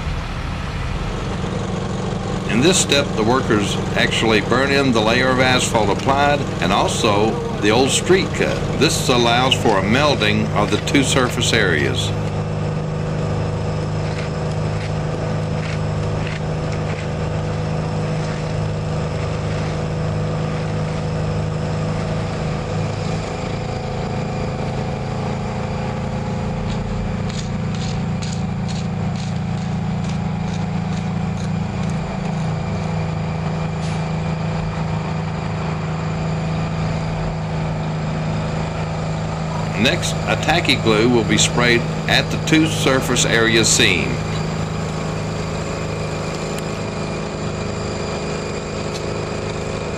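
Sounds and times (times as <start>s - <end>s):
heavy machinery engine idling: 0.0s - 49.9s.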